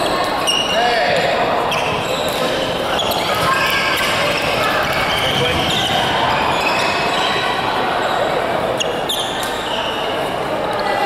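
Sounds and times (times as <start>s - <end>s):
voices chattering: 0.0s - 11.0s.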